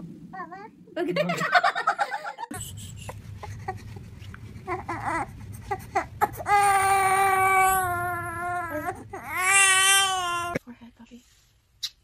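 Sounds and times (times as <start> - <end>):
newborn baby crying: 4.6 - 10.6.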